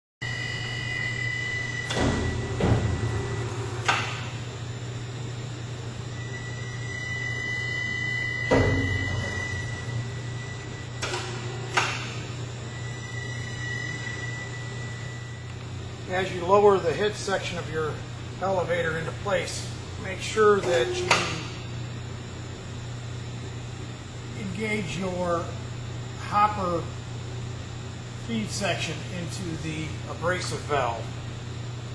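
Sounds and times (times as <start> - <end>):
steady low hum: 0.2 - 31.9.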